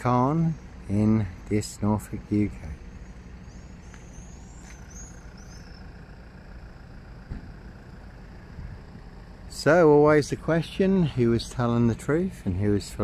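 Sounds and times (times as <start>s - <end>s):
road traffic rumble: 0.0s - 13.0s
brief knock: 7.3s - 7.5s.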